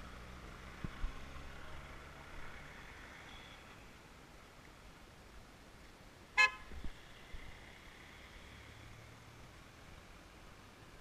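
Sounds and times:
car horn toot: 0:06.4 - 0:06.7.

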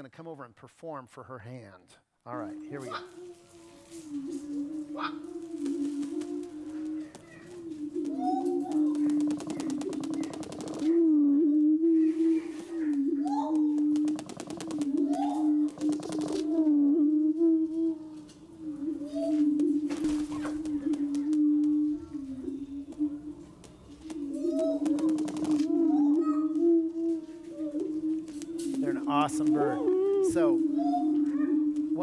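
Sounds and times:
higher whooping bird calls: 0:02.3 - 0:32.0.

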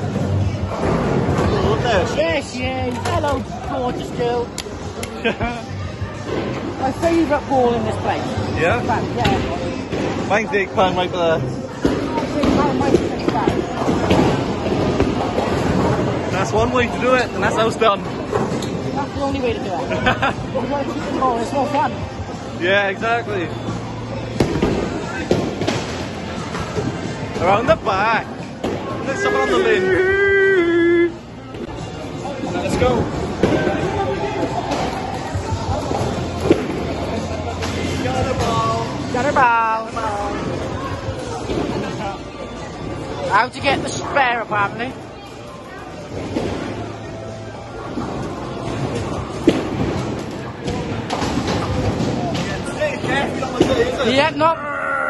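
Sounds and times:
busy bowling alley noise: 0:00.0 - 0:55.0
din of chatter: 0:00.0 - 0:55.0.

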